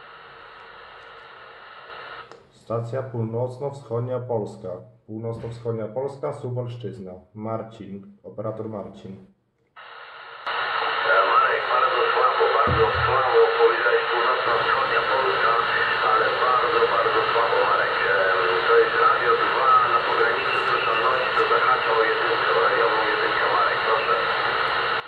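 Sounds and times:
radio static: 0.0s - 2.3s, 9.8s - 25.0s
voice over radio loudspeaker: 10.5s - 25.0s.

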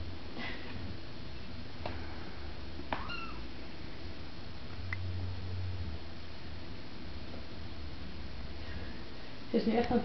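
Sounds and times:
kitten mewing: 3.0s - 3.4s.

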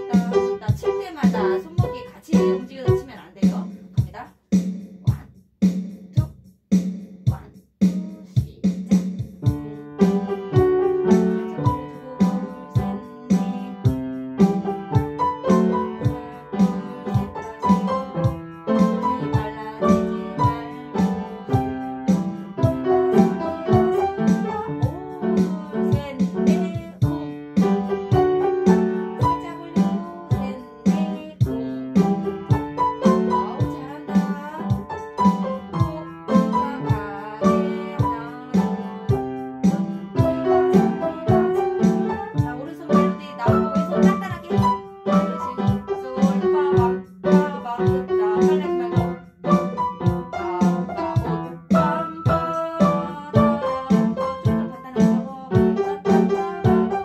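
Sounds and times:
upright piano jazz piece: 0.0s - 4.1s, 7.3s - 57.0s.

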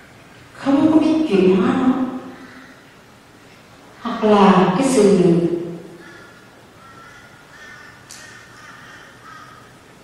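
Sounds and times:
faint bird calls: 2.2s - 3.1s, 5.5s - 10.0s.

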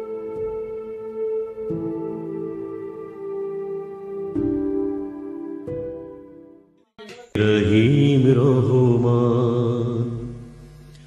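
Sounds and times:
gentle instrumental music: 0.0s - 9.8s
chanted vocal: 7.0s - 10.6s.

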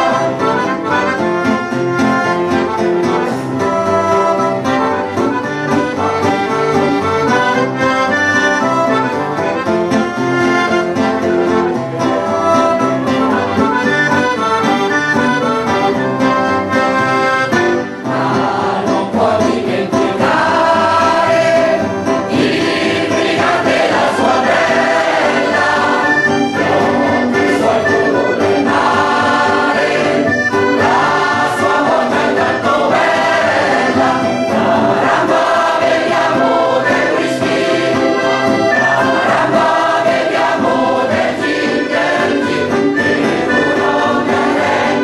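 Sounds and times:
mixed choir singing: 0.0s - 1.2s, 18.0s - 45.0s
instrumental accompaniment: 0.0s - 45.0s.

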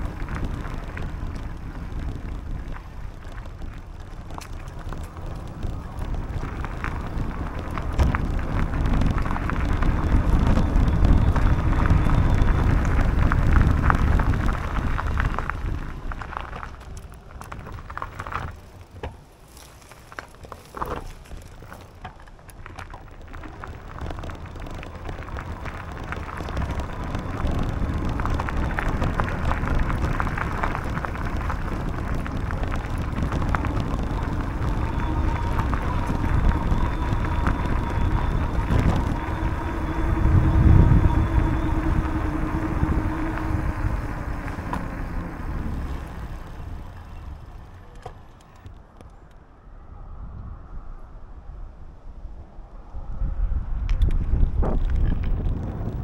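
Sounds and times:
wind on microphone: 0.0s - 18.6s, 22.7s - 47.6s, 49.6s - 56.0s
bicycle tyres on gravel: 0.0s - 49.3s, 52.9s - 56.0s
crackles and clicks: 0.0s - 49.4s, 53.7s - 56.0s.

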